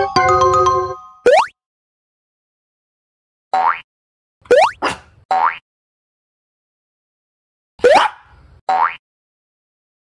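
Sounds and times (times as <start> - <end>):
cartoon pop gliding upward: 1.2 - 1.6.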